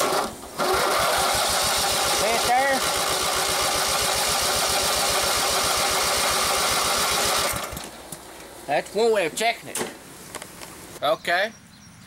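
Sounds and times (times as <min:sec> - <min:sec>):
small engine running: 0:00.0 - 0:08.0.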